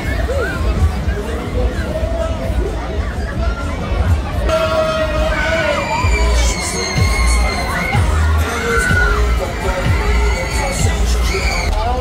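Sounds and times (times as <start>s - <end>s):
riders screaming and shouting: 4.4s - 12.0s
heavy bass beat music: 4.5s - 12.0s.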